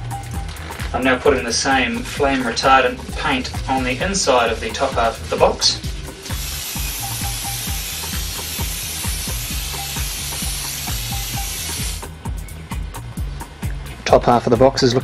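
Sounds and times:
background music with beat: 0.0 - 15.0
spray paint can hissing: 6.2 - 12.1.

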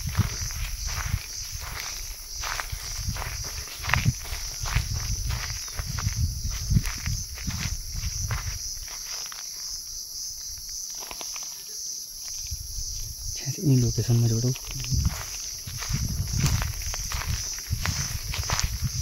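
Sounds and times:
footsteps crunching dry grass: 0.0 - 11.6, 12.4 - 19.0
high insect buzz: 0.0 - 19.0.

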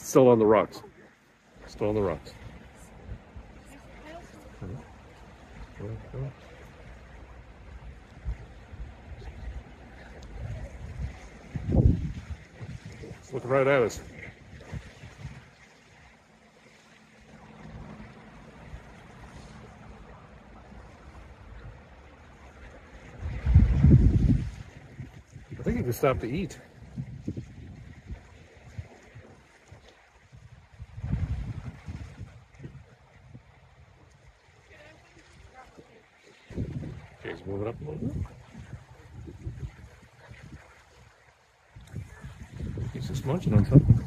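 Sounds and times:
loud low wind buffet: 0.0 - 16.2, 17.2 - 35.8, 36.4 - 44.0
wind on microphone: 7.6 - 15.6, 21.0 - 44.0.

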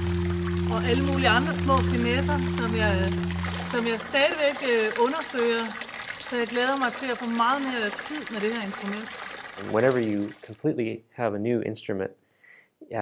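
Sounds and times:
water jets splashing: 0.0 - 10.6
woman speaking: 0.7 - 5.7, 6.3 - 9.0
man speaking: 9.6 - 12.1.

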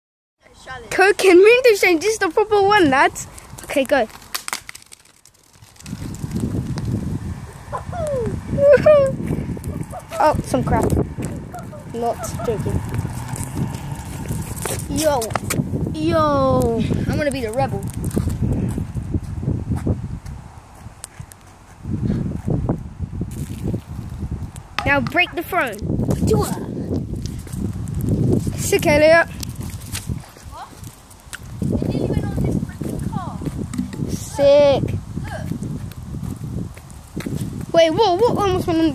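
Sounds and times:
footsteps on asphalt: 3.1 - 7.2, 9.2 - 15.9, 17.1 - 34.4, 35.3 - 38.8
plastic bottle clattering on asphalt: 3.6 - 6.5, 33.7 - 34.2
low rumbling noise: 5.8 - 14.9
sharp knocks: 33.7 - 34.2.

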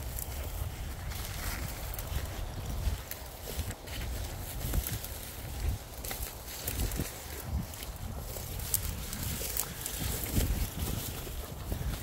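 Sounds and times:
footsteps through dry grass: 0.0 - 12.0
wind buffeting microphone: 0.0 - 12.0.

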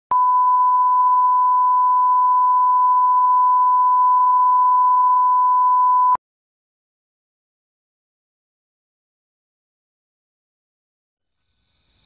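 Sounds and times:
steady reference tone beep: 0.1 - 6.2.

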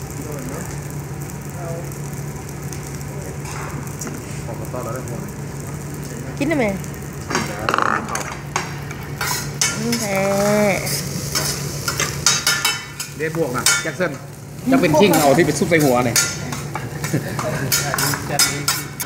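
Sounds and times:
rice sizzling on a griddle: 0.0 - 19.0
metal utensils clinking: 8.0 - 14.2, 14.9 - 19.0.

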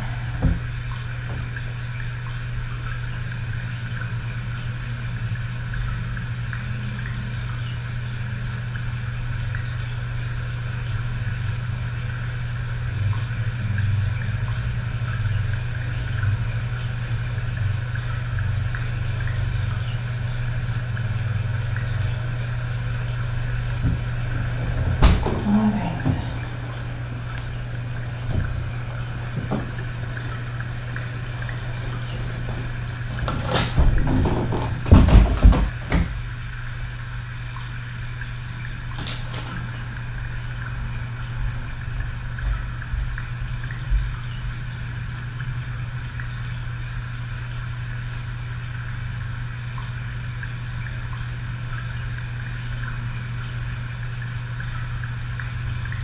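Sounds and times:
machine-like low hum: 0.0 - 56.0.

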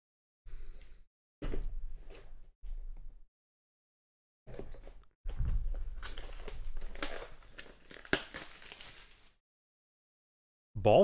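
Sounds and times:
packaging torn and crinkled: 5.4 - 9.4.

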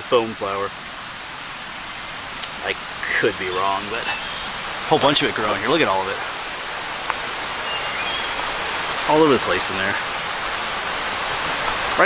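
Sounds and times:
stream water rushing: 0.0 - 12.0.

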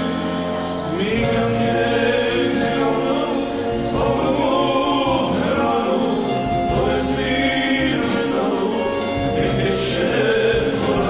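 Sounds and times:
band playing: 0.0 - 11.0
drums and cymbals: 0.0 - 11.0
man singing: 0.8 - 11.0.

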